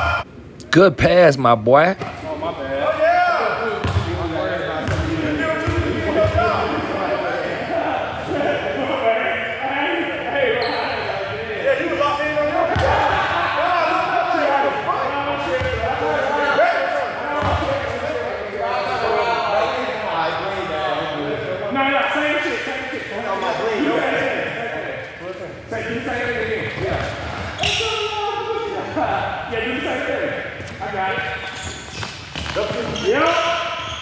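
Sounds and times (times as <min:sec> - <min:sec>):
people talking: 0:00.0 - 0:31.6, 0:32.5 - 0:33.9
basketball bouncing: 0:03.8 - 0:04.2, 0:04.8 - 0:06.4.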